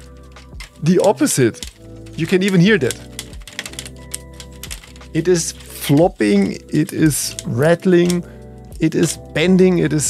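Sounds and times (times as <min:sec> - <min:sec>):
plastic grid tiles rattling: 0:00.0 - 0:08.2, 0:08.8 - 0:09.4.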